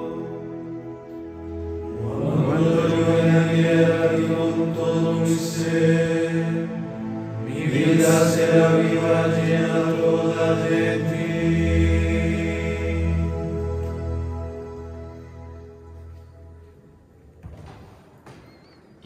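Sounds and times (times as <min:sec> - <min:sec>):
men chanting in unison: 0:07.6 - 0:13.1.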